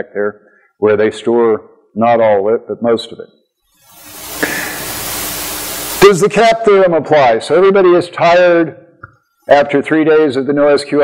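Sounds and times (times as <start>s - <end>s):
background hiss: 3.6s - 8.2s.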